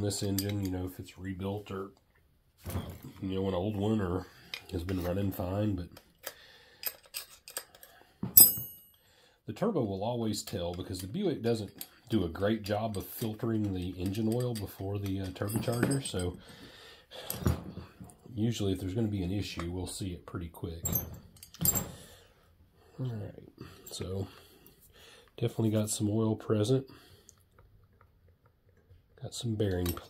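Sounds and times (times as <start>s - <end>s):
wrench clanking on bench: 14.0s - 16.4s.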